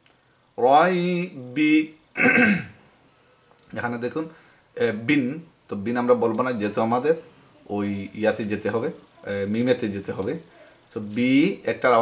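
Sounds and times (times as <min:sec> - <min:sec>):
man speaking: 0:00.6 - 0:02.4, 0:03.6 - 0:12.0
man clearing throat: 0:02.2 - 0:02.8.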